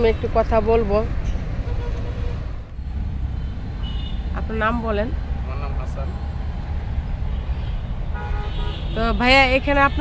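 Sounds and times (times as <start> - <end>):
road traffic rumble: 0.0 - 10.0
vehicle horn: 7.6 - 10.0.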